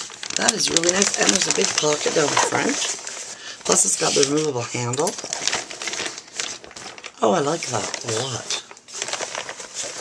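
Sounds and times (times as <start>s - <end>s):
fabric tote bag crinkling: 0.0s - 10.0s.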